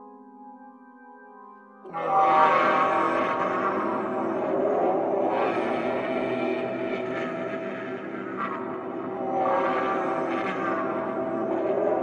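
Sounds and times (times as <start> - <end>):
dark ambient drone: 1.9 - 12.0.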